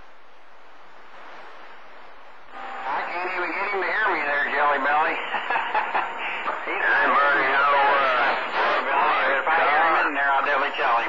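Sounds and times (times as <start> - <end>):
unclear voice over radio receiver: 2.6 - 5.4, 6.2 - 11.0.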